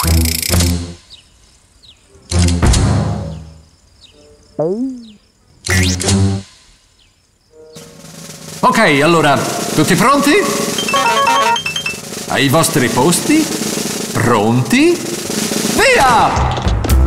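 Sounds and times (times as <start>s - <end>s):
light music: 10.4s - 12.4s.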